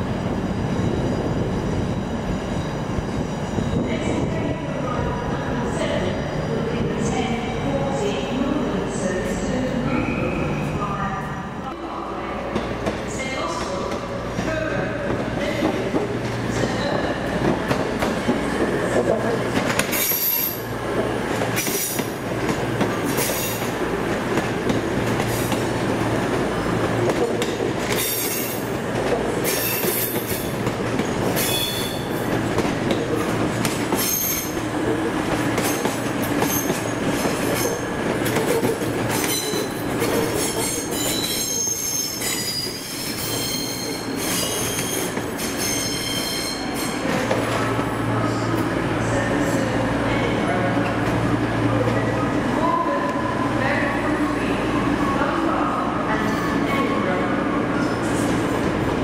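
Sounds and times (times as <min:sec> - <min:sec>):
diesel train engines rumbling: 0:00.0 - 0:59.0
wheel and brake squeals: 0:31.4 - 0:32.2, 0:33.9 - 0:34.6, 0:39.1 - 0:47.0.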